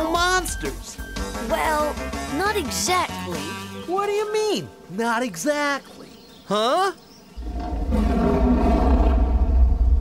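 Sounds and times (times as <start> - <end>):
deep heavy rumble: 7.4 - 10.0.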